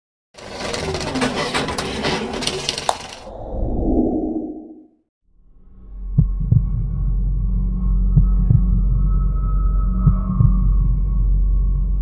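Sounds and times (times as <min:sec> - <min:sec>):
low rumble: 0:03.2 - 0:12.0.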